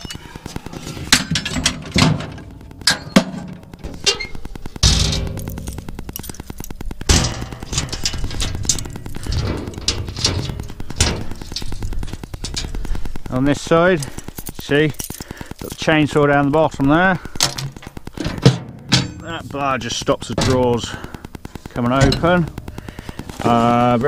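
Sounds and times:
metal scraping: 0:00.0 - 0:15.3, 0:17.4 - 0:24.0
loud metal bang: 0:18.2 - 0:20.9.

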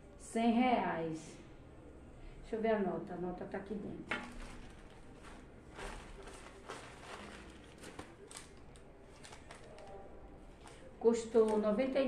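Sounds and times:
plastic bag rustling: 0:04.1 - 0:12.0.

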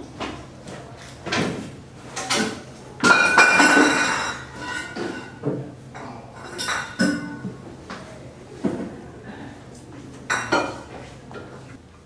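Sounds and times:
tableware clinking: 0:02.2 - 0:07.5, 0:10.3 - 0:11.5.

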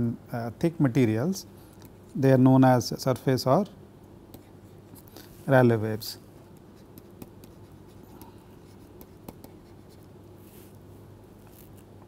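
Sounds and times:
low steady hum: 0:00.0 - 0:12.0
stylus scratching on tablet: 0:06.5 - 0:10.8.

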